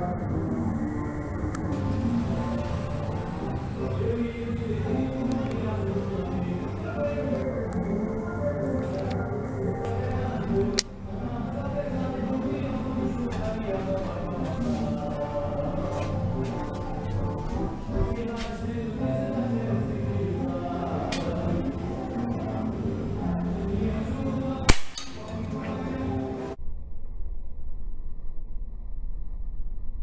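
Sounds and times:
background music: 0.0 - 26.6
air rifle shot: 24.7 - 25.3
fainter crack: 24.7 - 25.8.

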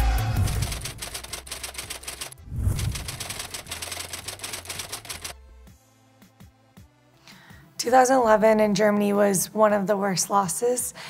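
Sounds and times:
fast mechanical clicking: 0.4 - 5.4.

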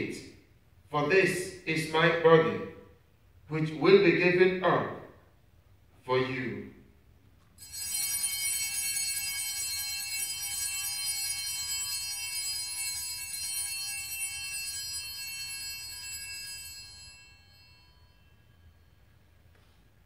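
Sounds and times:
altar bells jingling: 7.6 - 19.5.

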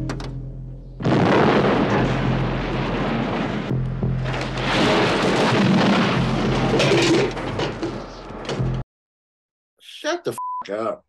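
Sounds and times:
film score music: 0.0 - 8.8
explosion rumbling: 1.0 - 8.8.

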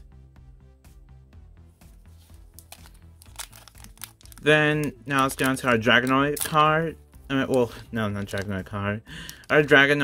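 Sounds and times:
quiet background music: 0.0 - 10.0
plastic wrapper crinkling: 2.4 - 6.7.

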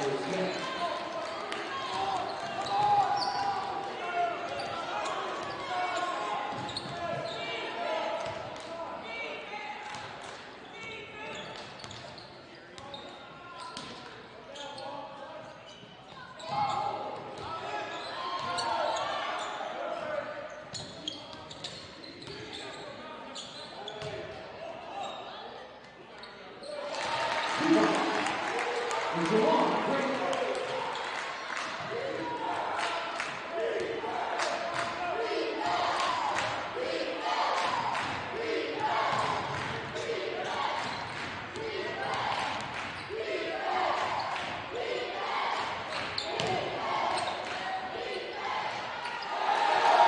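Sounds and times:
echoing voices in a hall: 0.0 - 50.0.

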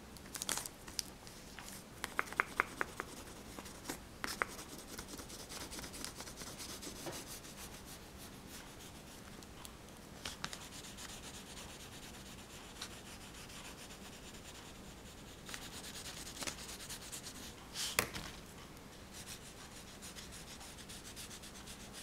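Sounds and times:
sharp ticks of pastel: 2.0 - 6.2
pastel scratching on paper: 2.6 - 9.2, 10.4 - 17.9, 19.1 - 22.0.

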